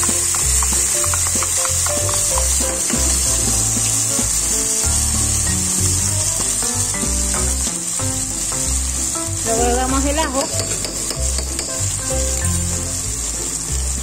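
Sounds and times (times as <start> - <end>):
background music: 0.0 - 14.0
onions sizzling in hot oil: 0.0 - 14.0.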